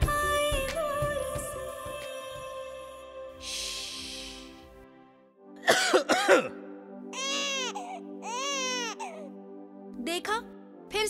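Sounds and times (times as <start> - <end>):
soft sustained music chord: 2.7 - 11.0
infant crying: 7.1 - 9.3.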